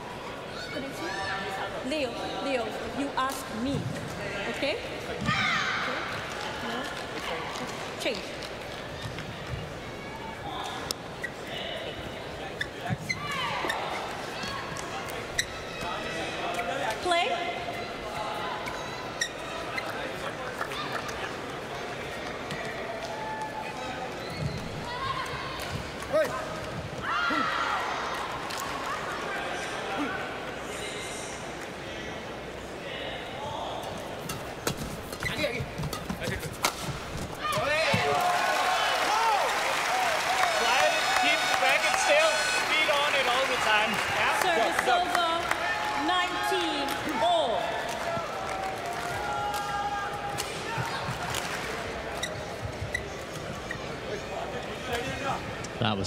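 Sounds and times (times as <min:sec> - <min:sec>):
crowd noise: 0:00.0 - 0:56.0
calls from the stands: 0:37.4 - 0:50.9
crowd cheering and shouting: 0:37.4 - 0:51.4.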